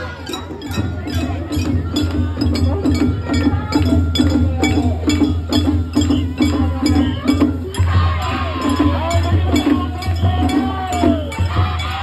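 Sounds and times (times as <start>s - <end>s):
festival drums: 0.0s - 12.0s.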